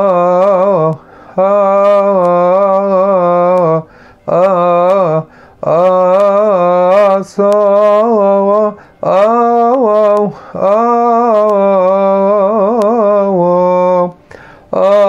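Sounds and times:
man chanting a hymn solo: 0.0 - 15.0
man breathing: 1.0 - 1.4, 3.8 - 4.3, 5.3 - 5.6, 8.8 - 9.0, 10.3 - 10.6, 14.2 - 14.8.

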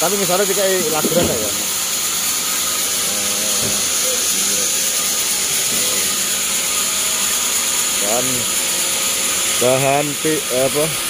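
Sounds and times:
faint voices: 3.0 - 5.0.

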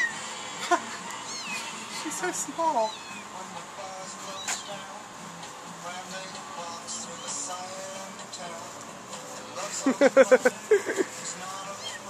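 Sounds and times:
kitten mewing: 1.3 - 1.7.

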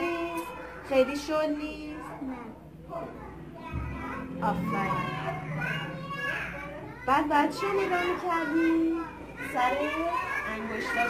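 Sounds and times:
young children talking: 0.0 - 11.0.

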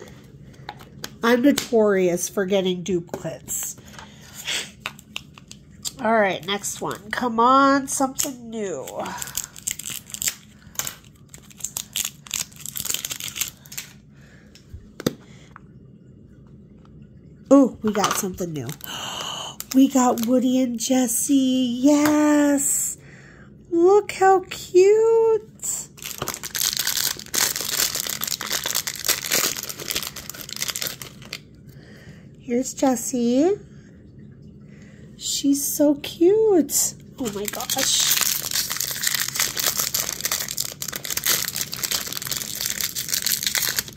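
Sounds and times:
plastic wrapping crinkling and tearing: 8.2 - 14.0, 18.6 - 19.0, 19.6 - 20.6, 25.7 - 31.5, 37.2 - 43.9.

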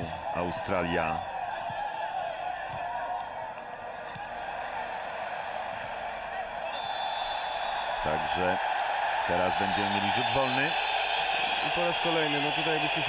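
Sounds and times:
stadium crowd din: 0.0 - 13.0
referee whistle: 6.6 - 7.9.

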